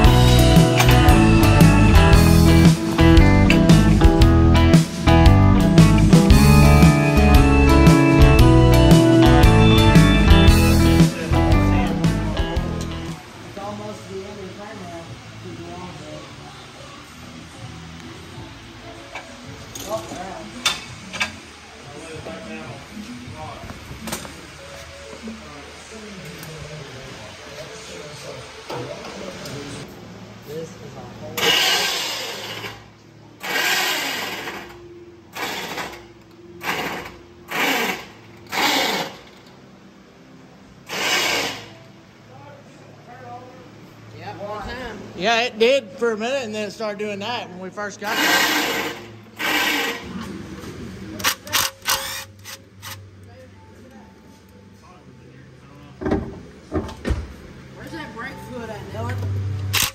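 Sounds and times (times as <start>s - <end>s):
background music: 0.0s - 13.3s, 44.2s - 56.8s
pressure washer spraying: 48.1s - 50.1s.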